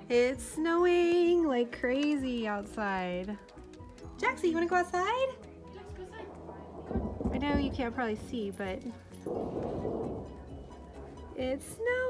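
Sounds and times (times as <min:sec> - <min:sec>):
distant explosion boom: 0:05.9 - 0:11.6.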